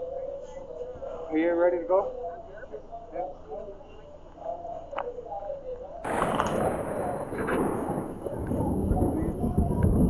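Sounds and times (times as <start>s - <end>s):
thunder crack and rumble: 6.0s - 10.0s.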